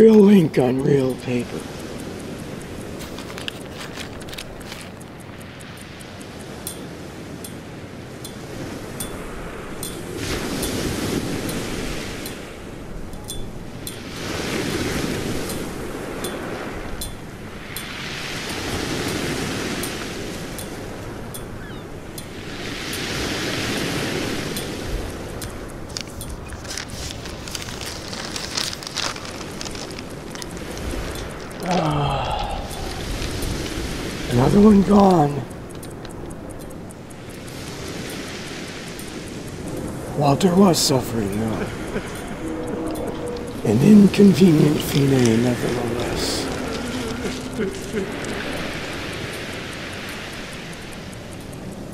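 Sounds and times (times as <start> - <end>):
waves washing onto shore: 0.0 - 51.9
light clicks: 0.9 - 7.6, 13.0 - 43.6.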